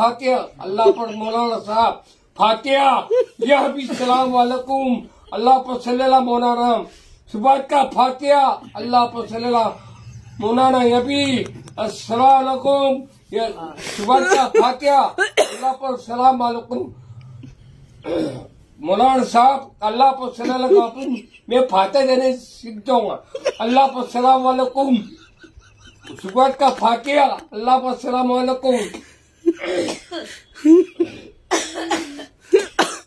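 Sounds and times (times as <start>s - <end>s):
man reciting prayers: 0.0s - 16.9s
man coughing: 3.3s - 5.3s, 14.0s - 16.0s, 18.0s - 18.5s, 28.8s - 33.0s.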